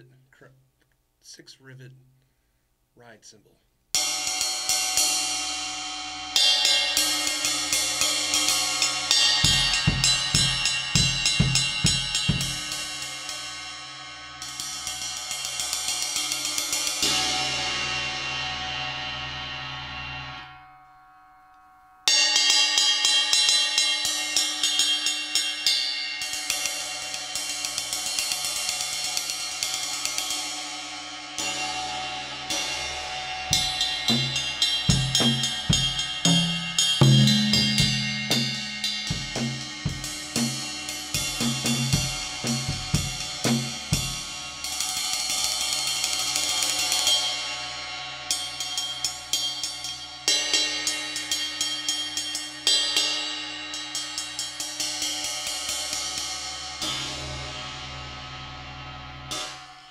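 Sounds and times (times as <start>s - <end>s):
ride cymbal played with drumstick: 4.0s - 20.4s, 22.1s - 59.9s.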